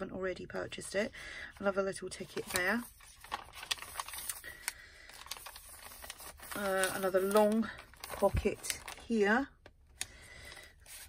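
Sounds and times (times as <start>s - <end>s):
light paper rustling: 1.6s - 9.7s, 10.3s - 11.0s
paper pages turning: 2.2s - 9.2s, 10.4s - 11.0s.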